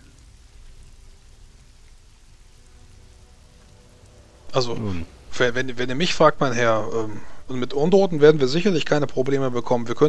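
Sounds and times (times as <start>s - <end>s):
ambient background music: 0.0s - 10.0s
steady hiss: 0.0s - 10.0s.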